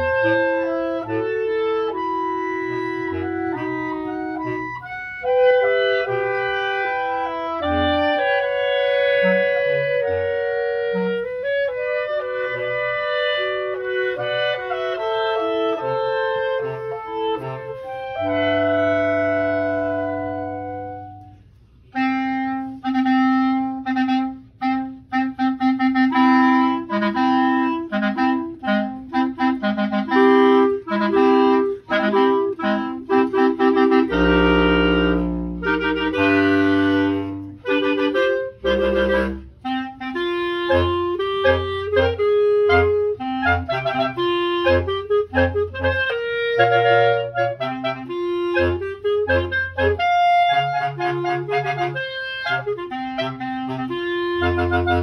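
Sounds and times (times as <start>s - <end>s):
clarinet ensemble playing: 0.0s - 55.0s.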